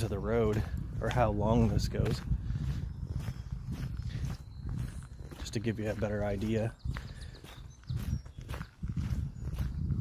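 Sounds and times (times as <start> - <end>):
footsteps through tall grass: 0.0 - 10.0.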